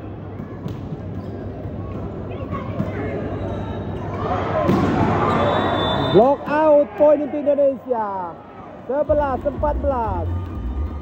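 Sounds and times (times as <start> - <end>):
crowd noise: 0.0 - 11.0
crowd cheering and shouting: 8.9 - 11.0.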